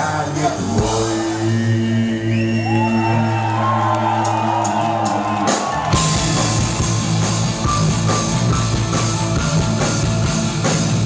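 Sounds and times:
rock band playing live: 0:00.0 - 0:02.0, 0:03.2 - 0:11.0.

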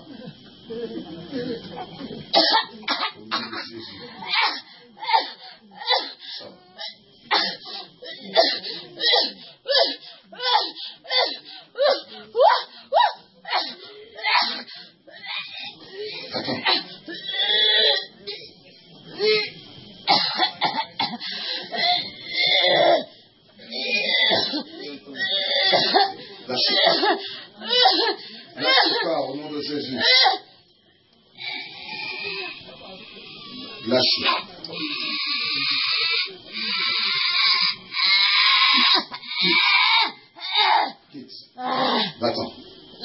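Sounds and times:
harsh strained cries: 0:02.4 - 0:18.5, 0:21.2 - 0:30.5, 0:31.4 - 0:41.0, 0:41.6 - 0:42.3.

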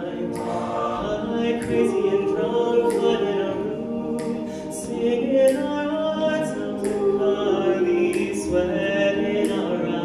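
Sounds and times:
men singing a cappella harmony: 0:00.0 - 0:10.0.

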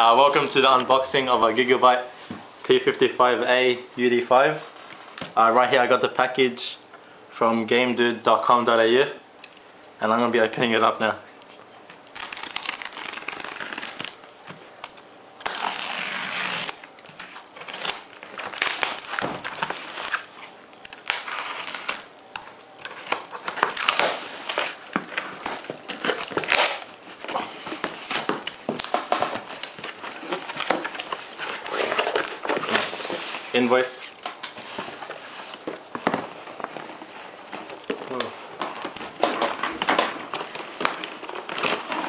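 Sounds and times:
packing tape ripping: 0:11.9 - 0:33.3, 0:33.9 - 0:42.0
crumpled paper rustling: 0:12.0 - 0:42.0.

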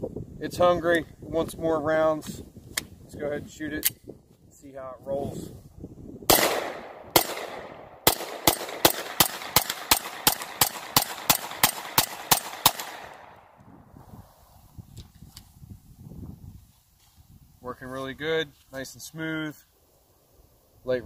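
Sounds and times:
pistol shots: 0:06.3 - 0:13.4.

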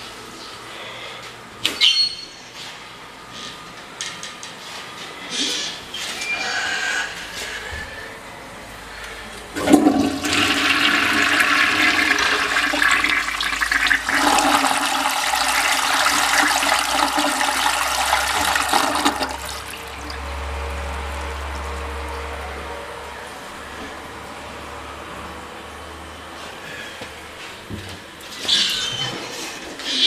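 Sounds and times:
toilet flushing: 0:09.5 - 0:24.0.

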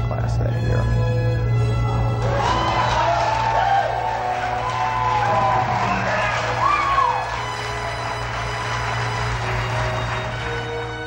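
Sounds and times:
background music: 0:00.0 - 0:11.0
crowd cheering and whooping: 0:02.2 - 0:10.9.

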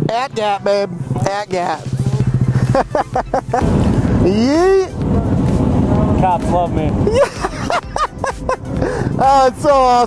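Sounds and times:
mini motorcycle engine running: 0:01.0 - 0:05.3
people laughing: 0:02.4 - 0:04.7, 0:07.0 - 0:09.2.

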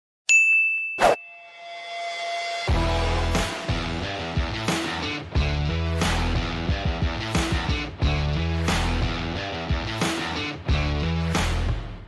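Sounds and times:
bright ringing chime: 0:00.3 - 0:02.5.

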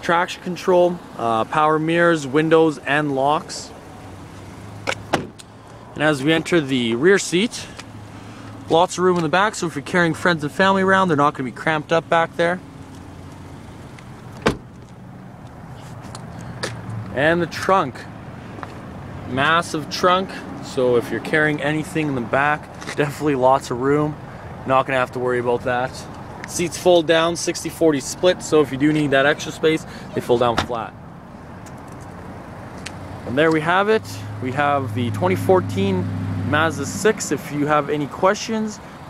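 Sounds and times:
low rumble of vehicles: 0:00.0 - 0:39.0
car door shutting thud: 0:04.8 - 0:05.4, 0:14.4 - 0:14.7.

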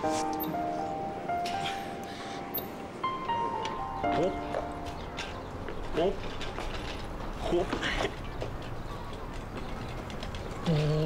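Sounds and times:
wheelchair rolling over paving: 0:03.4 - 0:11.0.

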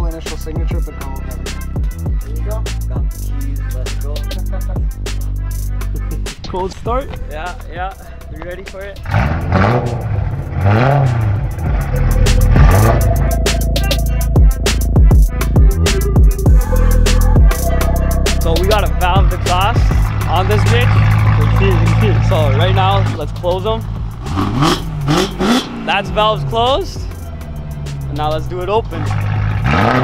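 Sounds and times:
music: 0:00.0 - 0:30.0
car engine revving: 0:05.9 - 0:30.0.

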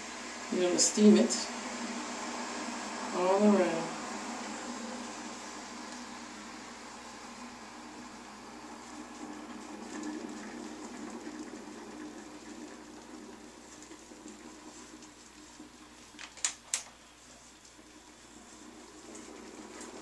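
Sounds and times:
garment steamer hum and hiss: 0:00.0 - 0:20.0.

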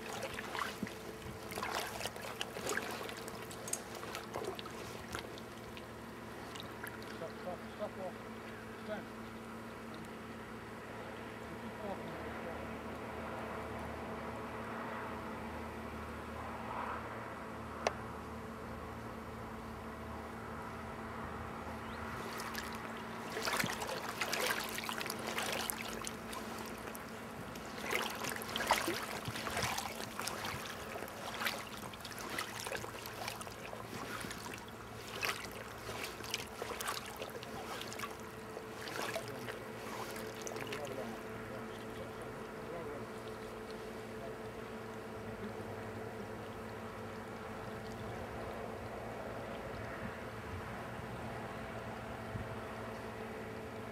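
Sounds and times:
flowing water: 0:00.0 - 0:10.9, 0:22.0 - 0:50.8
river water splashing: 0:00.0 - 0:12.0, 0:21.8 - 0:51.4.

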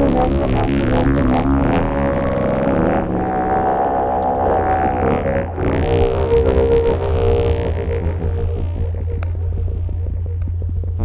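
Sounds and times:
buzzing synthesizer drone: 0:00.0 - 0:11.0
steady low bass: 0:00.0 - 0:11.0.

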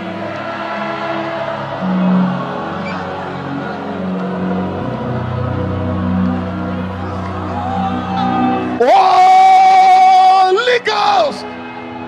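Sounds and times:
sustained worship chords: 0:00.0 - 0:12.0.

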